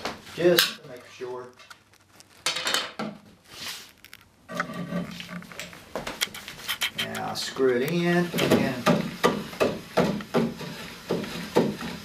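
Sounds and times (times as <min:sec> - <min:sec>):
wooden spindle rubbing and knocking: 0:04.0 - 0:07.4.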